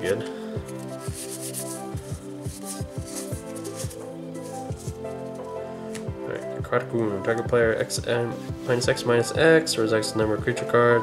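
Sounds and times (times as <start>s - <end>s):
background music with steady beat: 0.0s - 11.0s
trading cards sliding together: 0.6s - 5.0s.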